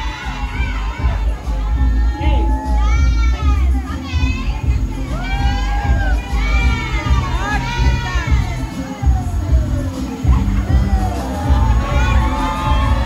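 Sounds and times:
crowd cheering and shouting: 0:00.0 - 0:13.0
loud music with bass beat: 0:00.0 - 0:13.0.

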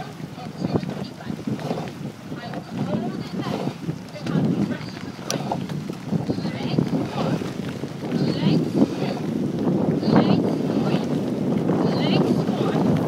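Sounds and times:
oars splashing water: 0:00.0 - 0:13.0
wind on microphone: 0:00.0 - 0:13.0.

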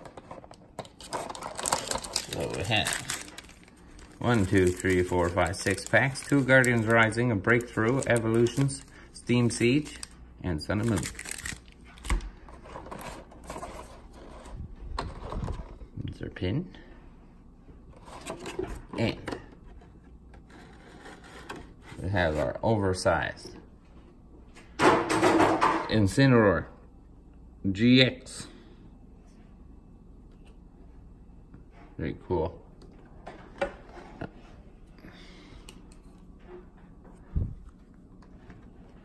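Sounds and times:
papery rustle: 0:01.0 - 0:12.2.

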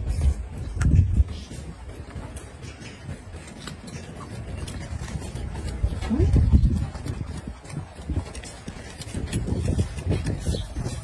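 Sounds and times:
rubbing noises: 0:00.0 - 0:11.0.

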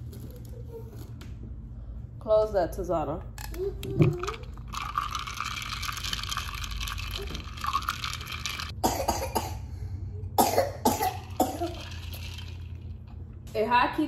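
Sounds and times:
straw stirring ice in a glass: 0:04.0 - 0:08.8, 0:11.1 - 0:12.9.

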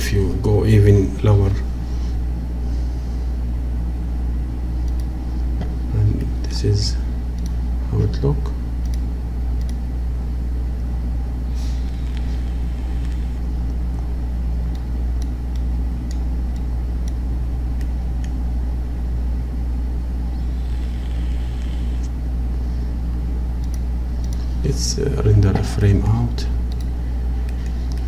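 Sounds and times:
low machine hum: 0:00.0 - 0:28.0.

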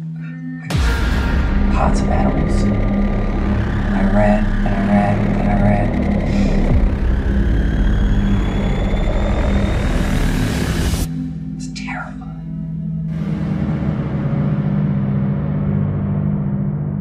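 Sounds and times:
low rumbling drone: 0:00.0 - 0:17.0
faint rising whine: 0:00.7 - 0:11.4.

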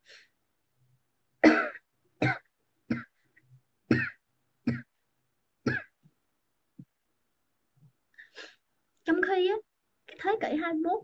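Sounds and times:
woman coughing: 0:01.4 - 0:03.1.

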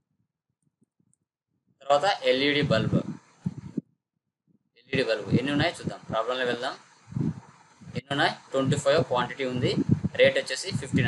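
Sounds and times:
man speaking: 0:01.8 - 0:03.2, 0:04.8 - 0:06.8, 0:08.0 - 0:11.0.

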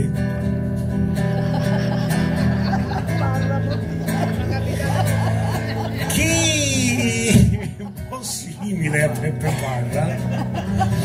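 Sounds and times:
acoustic guitar chords: 0:00.0 - 0:11.0
person's voice: 0:03.0 - 0:10.4.

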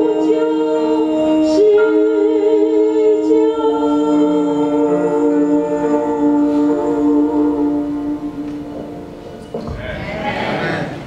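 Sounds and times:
musical accompaniment: 0:00.0 - 0:11.0.

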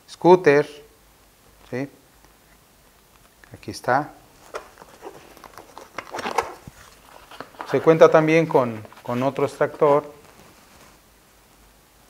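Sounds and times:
fabric rustling: 0:04.3 - 0:11.1.

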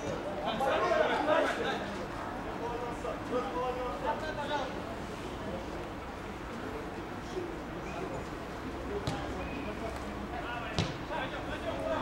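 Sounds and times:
football kicks: 0:10.7 - 0:11.0.

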